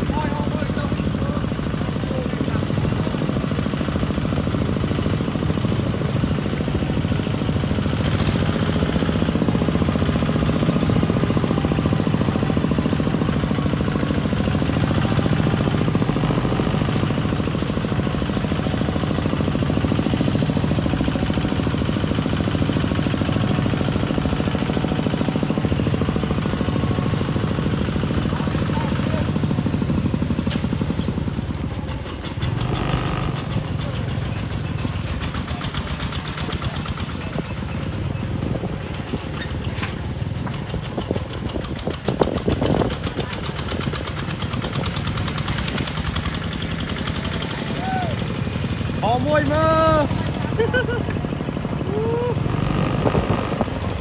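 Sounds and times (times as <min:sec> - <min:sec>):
diesel engine chugging: 0:00.0 - 0:54.0.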